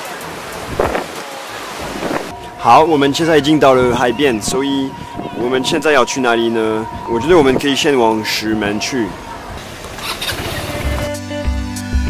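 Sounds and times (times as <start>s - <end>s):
scooter engine running: 9.6s - 11.2s.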